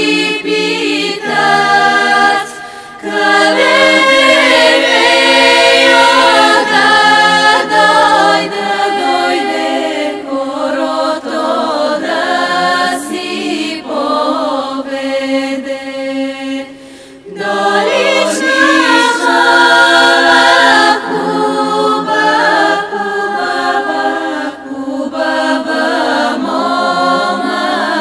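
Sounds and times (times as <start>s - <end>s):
women's choir singing a cappella: 0.0s - 28.0s.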